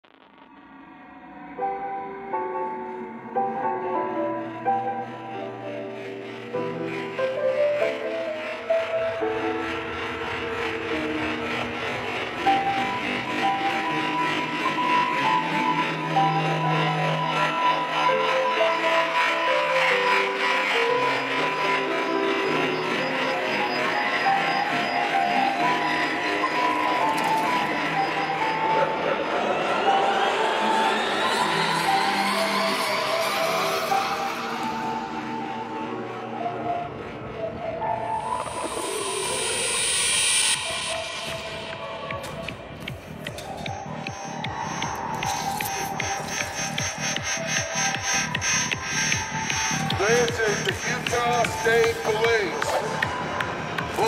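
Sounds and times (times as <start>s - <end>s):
rising synth sweep: 0.0s - 54.0s.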